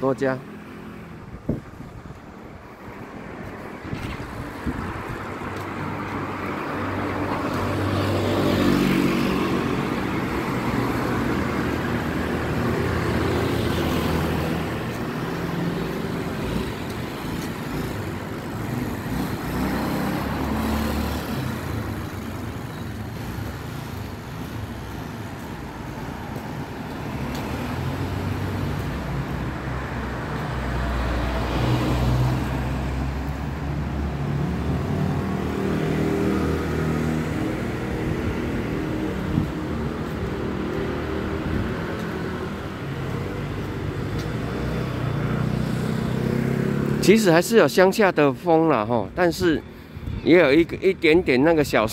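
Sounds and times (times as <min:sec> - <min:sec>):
cars passing: 0:00.0 - 0:51.9
motor scooters passing: 0:02.7 - 0:47.9.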